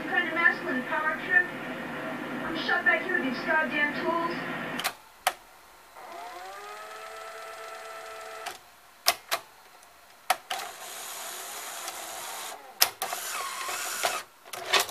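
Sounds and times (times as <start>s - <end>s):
noisy mechanical whirr: 0.0s - 14.9s
motor whining: 5.9s - 8.7s, 10.5s - 14.3s
sharp mechanism clicks: 6.0s - 9.4s, 10.3s - 14.9s.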